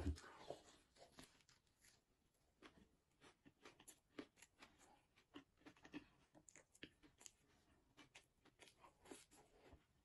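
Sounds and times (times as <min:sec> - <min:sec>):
close-up chewing clicks: 0:02.6 - 0:08.8.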